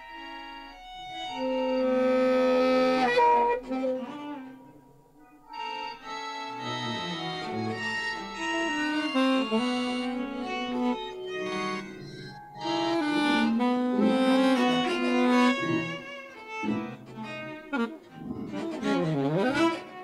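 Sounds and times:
keyboard: 0:00.0 - 0:20.0
live electronics: 0:00.0 - 0:20.0
saxophone: 0:00.0 - 0:20.0
wind synthesizer lines: 0:05.5 - 0:20.0.

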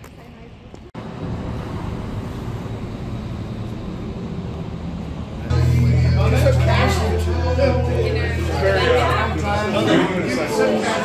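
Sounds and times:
low rumbling noise: 0:01.0 - 0:10.9.

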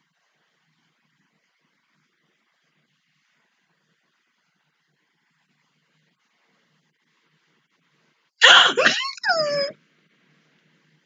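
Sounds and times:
woman's muffled excited squeal: 0:08.4 - 0:09.7.

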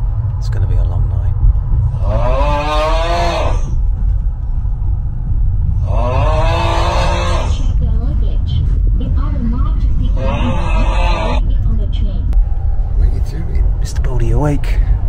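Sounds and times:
train rumble: 0:00.0 - 0:15.0.

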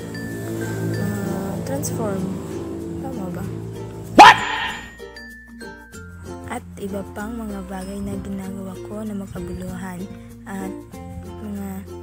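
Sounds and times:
quiet background music: 0:00.0 - 0:12.0
man shouting: 0:04.2 - 0:04.9.

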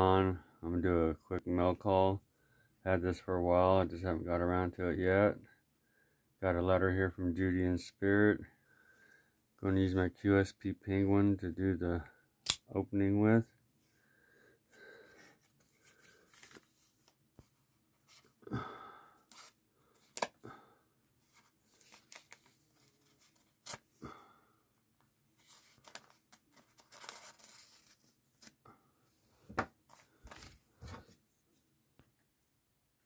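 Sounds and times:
paper rustling and tearing: 0:21.3 - 0:24.0, 0:25.4 - 0:28.6.

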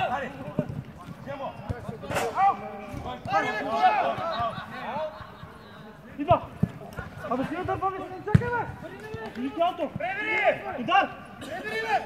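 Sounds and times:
men shouting and calling: 0:00.0 - 0:12.0.

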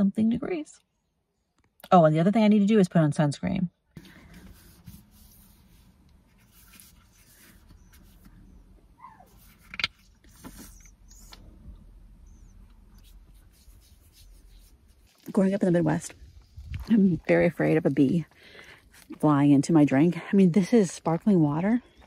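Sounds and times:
soft clicks and rubbing: 0:09.3 - 0:11.8.

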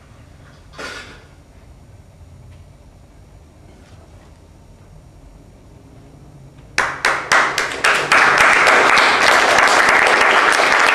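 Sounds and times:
audience applause: 0:06.8 - 0:10.9.

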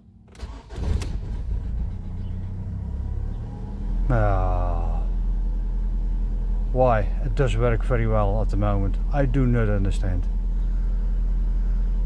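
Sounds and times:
car engine starting and idling: 0:00.0 - 0:12.0.

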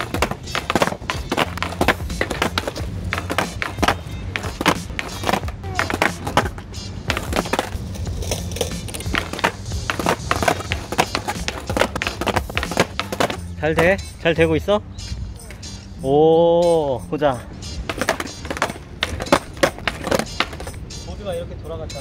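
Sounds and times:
skateboard clacking on pavement: 0:00.0 - 0:14.0, 0:17.8 - 0:20.8
background music: 0:00.0 - 0:22.0.

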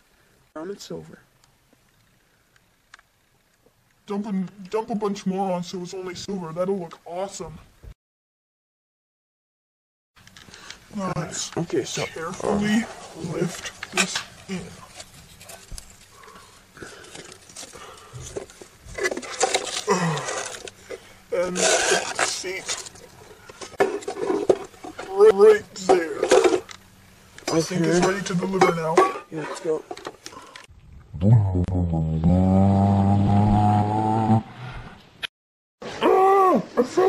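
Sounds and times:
low buzzy droning hum: 0:10.2 - 0:32.2.

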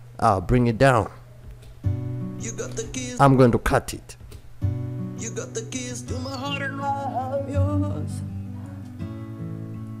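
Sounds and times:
acoustic guitar: 0:01.6 - 0:03.5, 0:04.2 - 0:10.0
person singing: 0:05.2 - 0:09.1.

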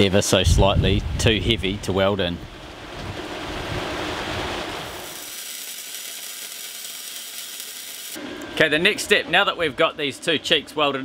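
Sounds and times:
wind: 0:00.0 - 0:11.0
rain: 0:02.5 - 0:08.2
welding arc crackling: 0:04.5 - 0:08.2.

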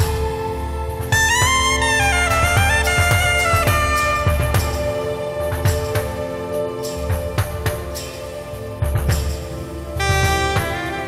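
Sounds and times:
drum and percussion hits: 0:01.2 - 0:06.2.

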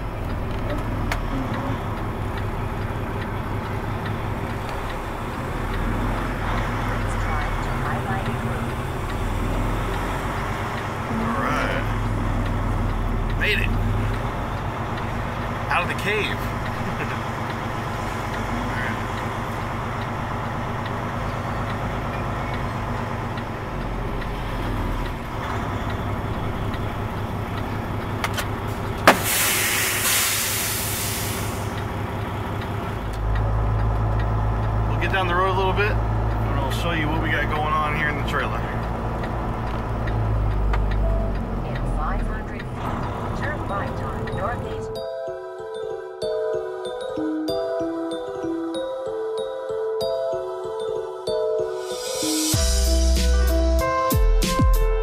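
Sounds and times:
truck diesel engine running: 0:00.0 - 0:45.2
air brake hiss: 0:29.1 - 0:31.8.

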